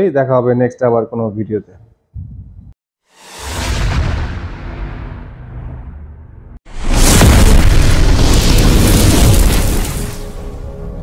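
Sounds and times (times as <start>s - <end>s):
explosion boom: 2.2s - 10.6s.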